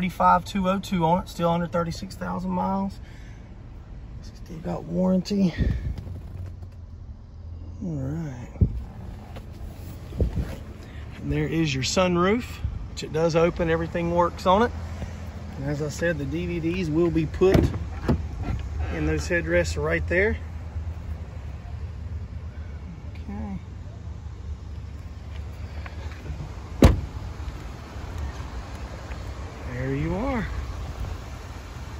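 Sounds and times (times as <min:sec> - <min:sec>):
wind rumble on microphone: 0:08.5 - 0:09.0, 0:10.0 - 0:10.7
car cabin hum: 0:15.8 - 0:21.9, 0:24.6 - 0:31.1.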